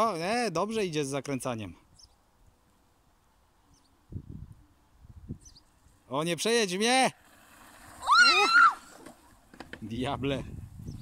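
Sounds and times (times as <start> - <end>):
child yelling: 8.0 - 8.9.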